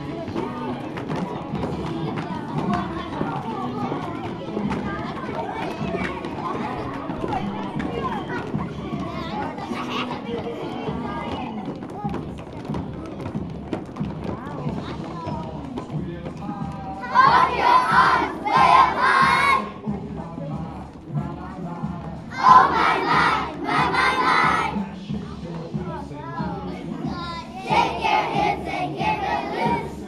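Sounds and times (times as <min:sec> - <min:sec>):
murmur of voices: 0:00.0 - 0:30.0
music: 0:00.0 - 0:30.0
children chanting in unison: 0:17.0 - 0:19.8, 0:22.3 - 0:24.8, 0:26.4 - 0:30.0.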